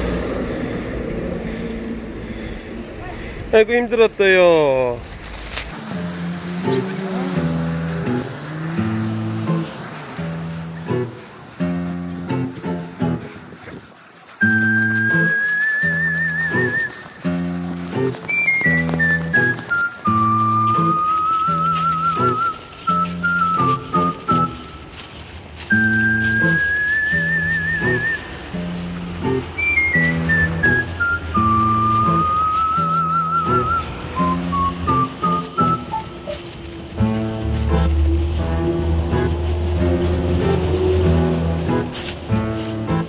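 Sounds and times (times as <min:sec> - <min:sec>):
whistled melody with vibrato: 0:05.8 - 0:43.0.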